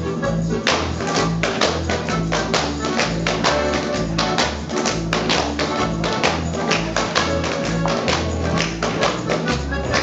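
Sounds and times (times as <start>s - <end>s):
folk dance music with oom-pah bass: 0.0s - 10.0s
shoes tapping and stamping on stage: 0.5s - 10.0s.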